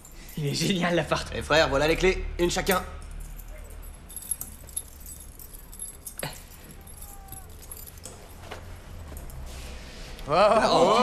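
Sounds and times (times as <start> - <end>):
metal keys jangling: 0.0 - 1.0, 2.5 - 9.7.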